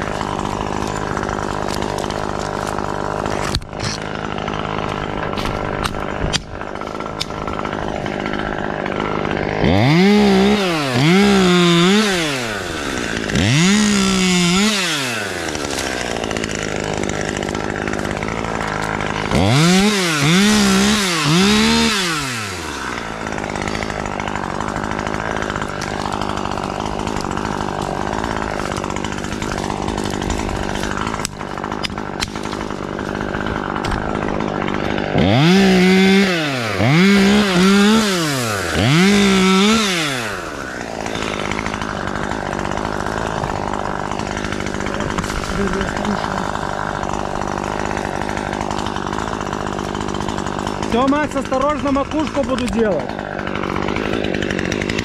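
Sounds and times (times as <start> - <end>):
chainsaw idling and revving: 0.0 - 55.0.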